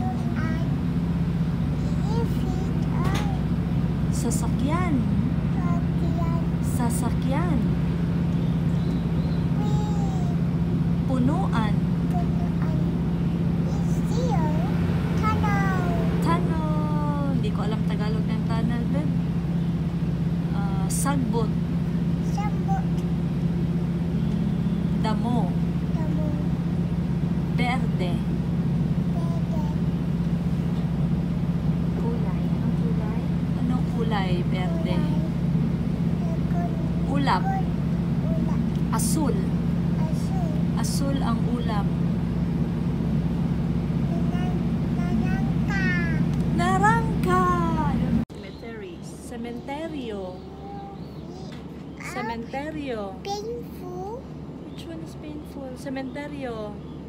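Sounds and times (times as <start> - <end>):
soft voices: 0.0 - 7.9, 8.6 - 19.3, 20.4 - 23.2, 24.1 - 26.8, 29.0 - 31.0, 31.8 - 42.1, 44.0 - 56.9
train carriage rumble and hum: 0.0 - 57.0
train rumbling inside carriage: 13.6 - 37.6.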